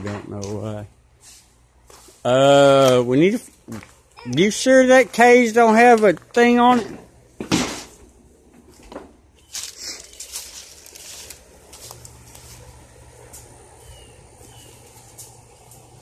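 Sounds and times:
footsteps on grass: 3.4 - 15.9
rustling: 7.5 - 13.6
bird chirps: 13.8 - 15.0.

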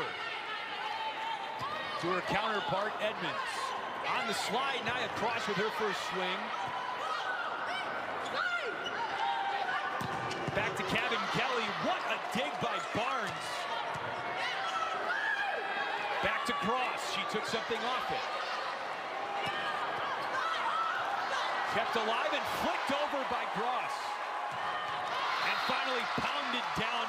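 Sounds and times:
arena crowd murmur: 0.0 - 27.0.

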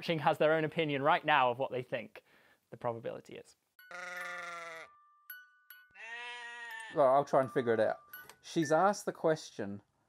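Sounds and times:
sheep bleating: 3.9 - 4.9, 6.0 - 7.0.

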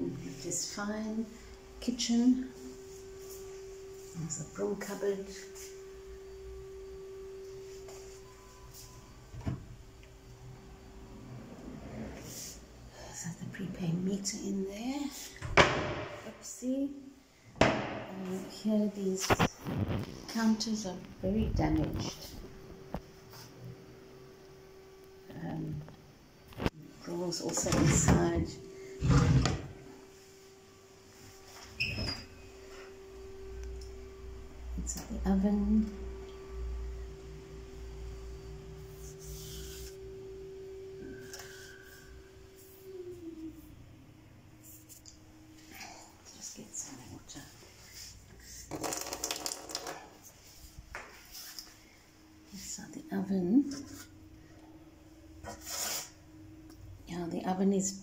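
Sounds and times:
steady single-pitched hum: 0.0 - 48.7, 50.1 - 58.0
oven door squeak: 31.8 - 32.4.

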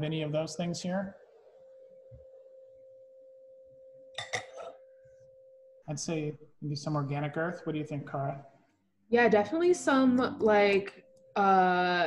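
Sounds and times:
faint steady tone: 0.0 - 12.0.

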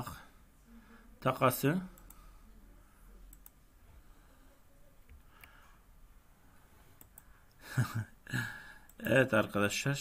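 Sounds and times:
faint computer mouse clicks: 3.3 - 3.6, 7.0 - 7.3.

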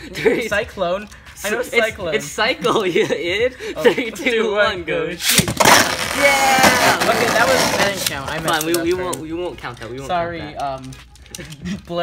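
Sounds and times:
spinning top launch: 5.2 - 8.1.

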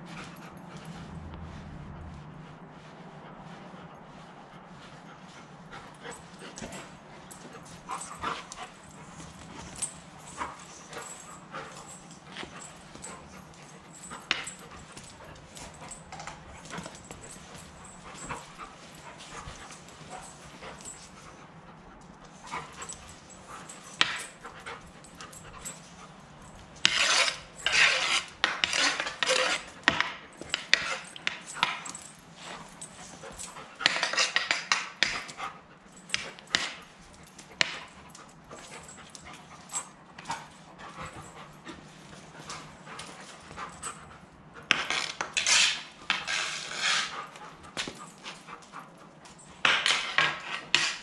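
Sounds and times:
dog claws clicking on concrete: 5.7 - 21.2, 22.2 - 51.0
stick blade scraping concrete: 26.8 - 31.4, 33.8 - 35.2, 44.7 - 48.0, 49.6 - 51.0.

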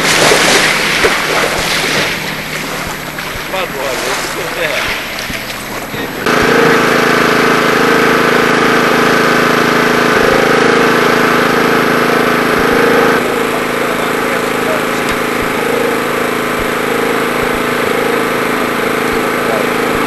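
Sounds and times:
engine-like drone: 0.0 - 20.0.

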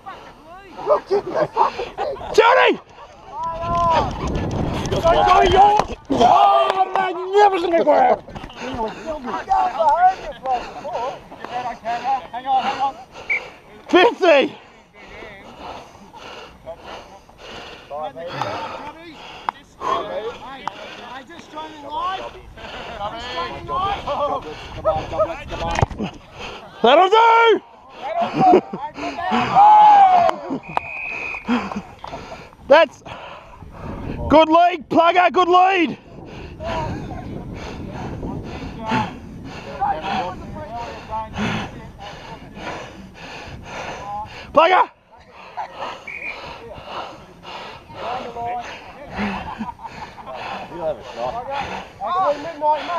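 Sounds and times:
heavy breathing: 0.0 - 4.6, 7.9 - 29.6, 30.3 - 34.4, 35.8 - 52.9
distant shouts of footballers: 29.1 - 31.5.

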